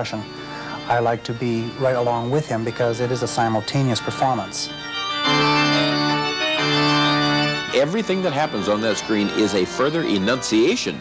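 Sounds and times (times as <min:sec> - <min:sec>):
electronic organ sustained chords: 0:00.0 - 0:11.0.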